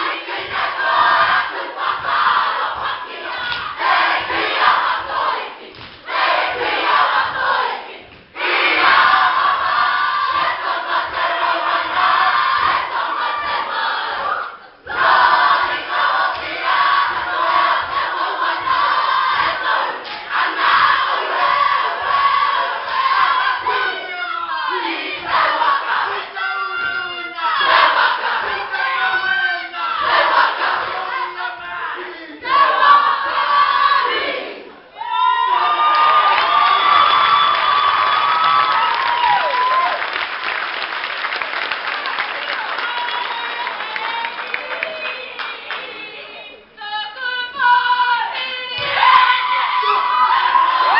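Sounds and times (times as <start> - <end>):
male voices chanting and shouting: 23.6 - 33.5
audience cheering and screaming: 35.0 - 40.2, 42.6 - 45.2.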